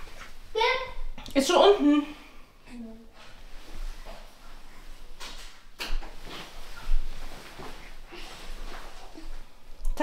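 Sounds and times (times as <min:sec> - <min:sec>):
rustling: 0:03.1 - 0:09.8.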